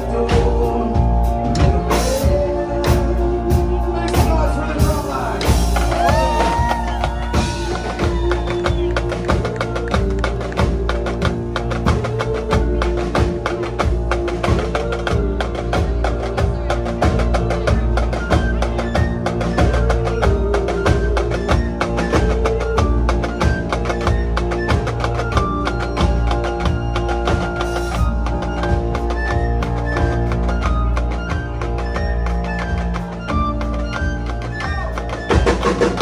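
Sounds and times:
live band playing rock music: 0.0s - 36.0s.

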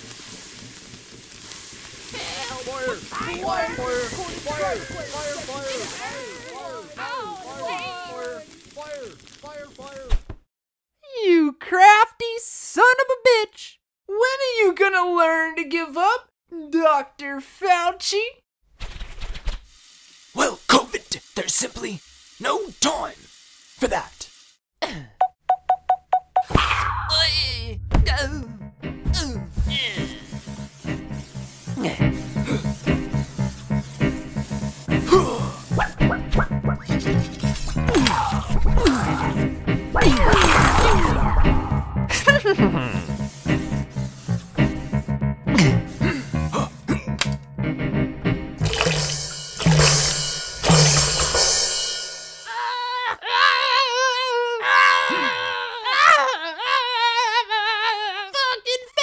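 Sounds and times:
fire crackling: 0.0s - 10.3s, 26.7s - 47.4s, 48.6s - 52.4s
sudden burst: 37.8s - 43.2s.

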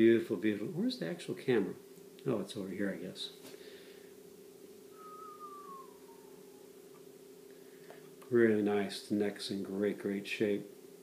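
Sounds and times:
steady low hum: 0.0s - 11.0s
thin tone gliding downward: 4.9s - 7.0s.

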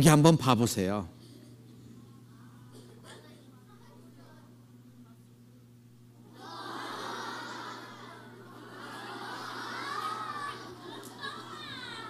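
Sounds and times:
children shouting and chattering: 6.2s - 12.0s.

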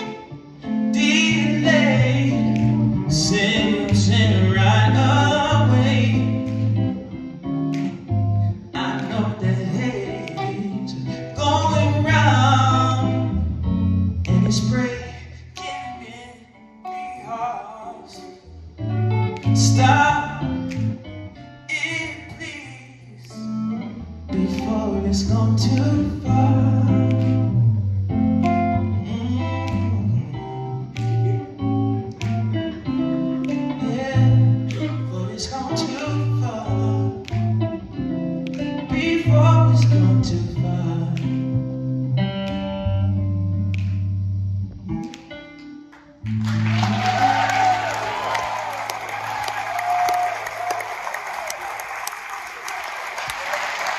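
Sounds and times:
electric guitar chords: 0.0s - 53.9s
upright bass notes: 1.0s - 15.3s, 18.6s - 22.1s, 23.3s - 47.2s.

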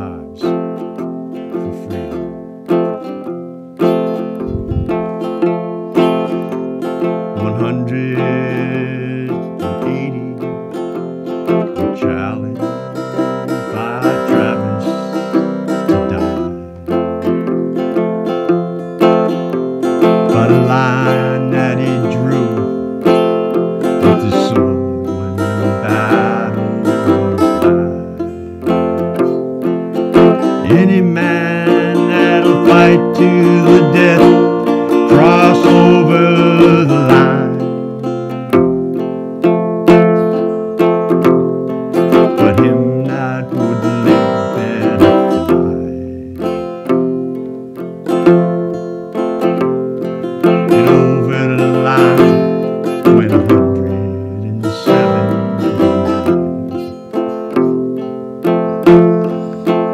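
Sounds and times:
acoustic guitar strummed and picked: 0.0s - 59.9s
person singing: 0.0s - 59.9s.

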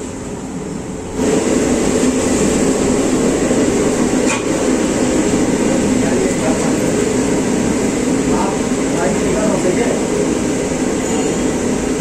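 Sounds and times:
gas burner roaring: 0.0s - 12.0s.

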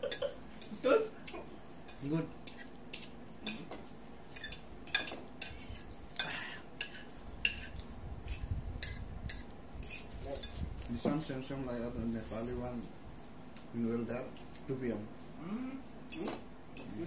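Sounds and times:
fork scraping against a plate: 1.9s - 3.7s, 4.3s - 10.6s.

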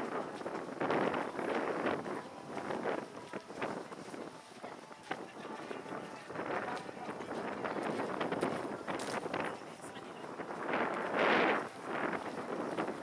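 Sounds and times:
faint indistinct voices: 0.0s - 13.0s
wind buffeting microphone: 0.0s - 13.0s.

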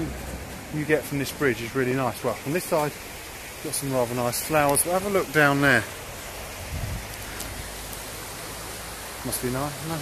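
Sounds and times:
river rushing over stones: 0.0s - 10.0s.

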